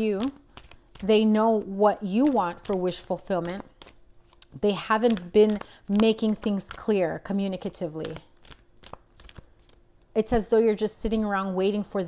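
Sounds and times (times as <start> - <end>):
cards clicking and rustling: 8.0 - 9.8.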